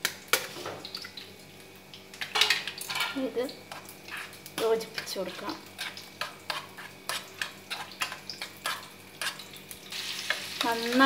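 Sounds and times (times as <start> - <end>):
utensil scraping steel saucepan: 2.4 - 9.4.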